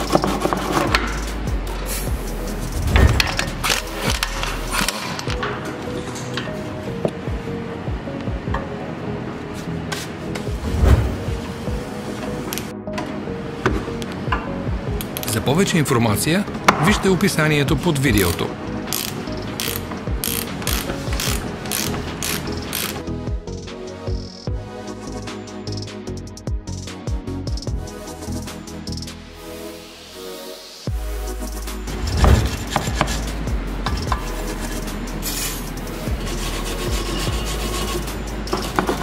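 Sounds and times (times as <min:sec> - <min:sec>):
spanner ratchet clicking: 0:00.0 - 0:01.9, 0:18.9 - 0:23.0, 0:32.7 - 0:35.9
wire brush scrubbing metal: 0:32.0 - 0:39.0.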